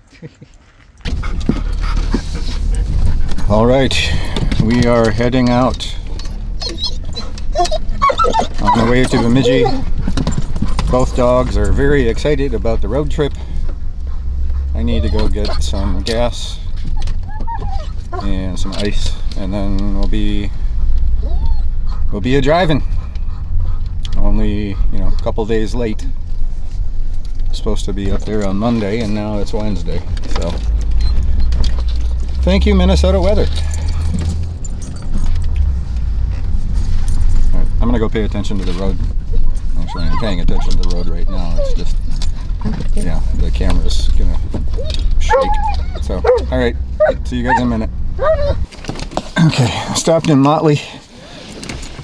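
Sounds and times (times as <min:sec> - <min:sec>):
car engine idling: 0:01.0 - 0:48.8
light jingling and rattling clicks: 0:28.1 - 0:37.8.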